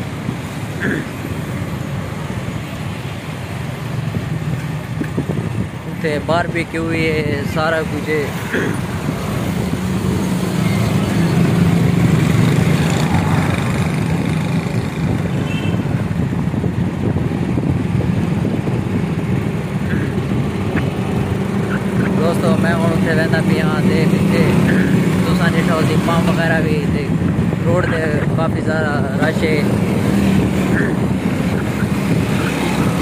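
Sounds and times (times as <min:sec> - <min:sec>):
motorcycles passing: 0:00.0 - 0:33.0
road traffic rumble: 0:00.0 - 0:33.0
indistinct voices: 0:21.5 - 0:29.9.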